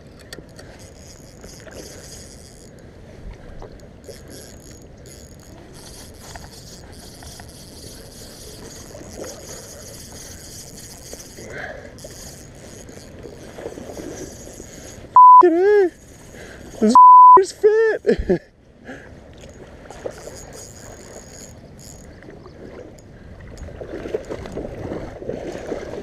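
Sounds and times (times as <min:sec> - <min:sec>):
wind: 0:00.0 - 0:26.0
fishing reel whirring: 0:00.2 - 0:02.8, 0:03.8 - 0:17.0, 0:19.5 - 0:22.3.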